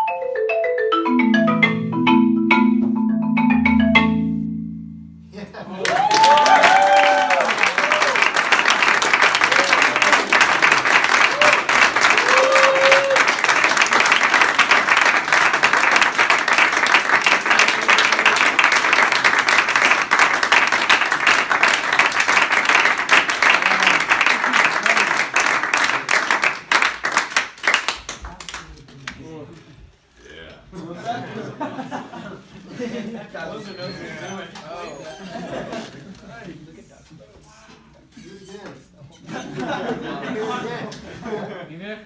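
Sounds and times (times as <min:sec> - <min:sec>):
shouted cheers: 0:05.8 - 0:08.4, 0:09.4 - 0:10.4, 0:11.2 - 0:13.5
audience applauding: 0:05.8 - 0:29.2.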